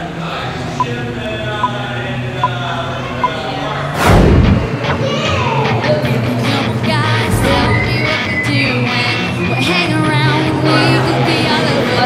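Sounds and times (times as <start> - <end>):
music playing: 3.2 - 12.0
loud boom: 4.0 - 5.0.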